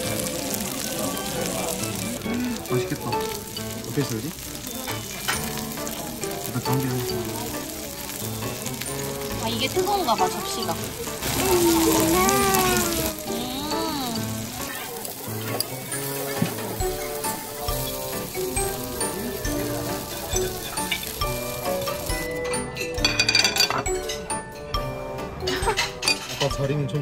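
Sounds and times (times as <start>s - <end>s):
steak sizzling on a plate: 0.0s - 26.4s
background music: 0.0s - 27.0s
cutlery clinking on a plate: 22.5s - 24.4s, 25.5s - 26.6s.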